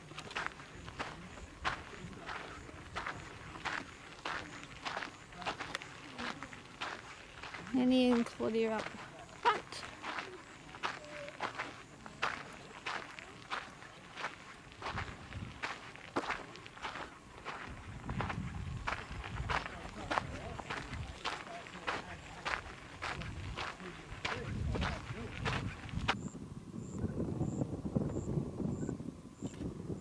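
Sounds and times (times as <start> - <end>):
footsteps on dirt and stones: 0.0 - 26.2.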